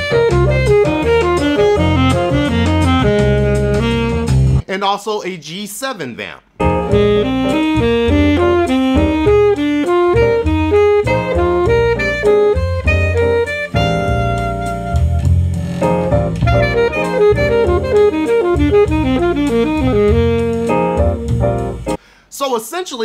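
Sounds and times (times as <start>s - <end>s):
jazz backing track with bass and drums: 0.0s - 4.7s, 6.6s - 22.0s
alto saxophone quick runs: 6.9s - 21.5s.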